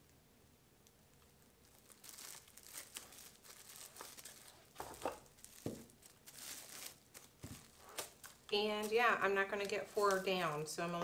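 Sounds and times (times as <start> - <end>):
plastic film crinkling and tearing: 1.2 - 11.0.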